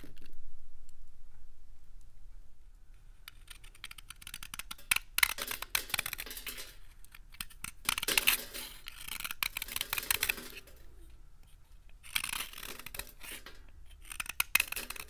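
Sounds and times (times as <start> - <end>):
knife cutting brittle bar: 3.3 - 10.7, 11.9 - 15.0.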